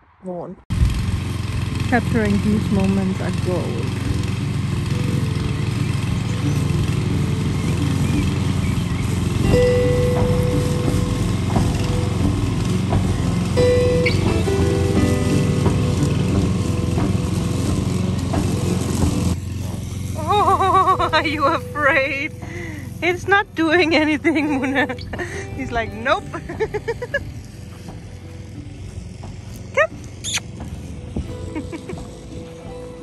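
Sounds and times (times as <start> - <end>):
lawn mower cutting grass: 0.7 - 33.0
background music: 1.2 - 33.0.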